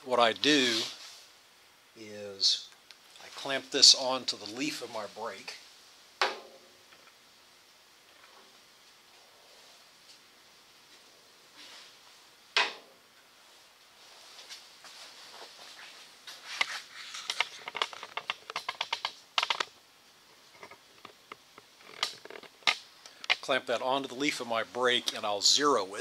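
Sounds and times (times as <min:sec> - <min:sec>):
handling clicks and knocks: 0:17.3 - 0:19.8.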